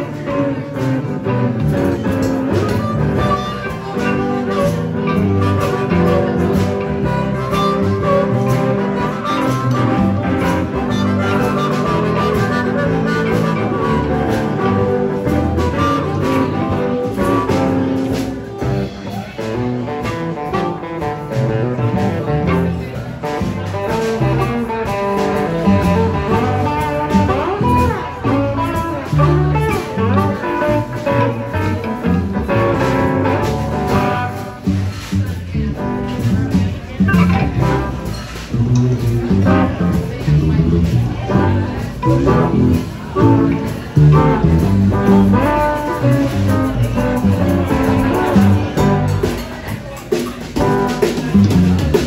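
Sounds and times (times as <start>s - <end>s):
drum kit: 0.0s - 52.0s
electric guitar: 0.0s - 52.0s
upright double bass: 0.0s - 52.0s
harmonica solo: 2.7s - 15.1s.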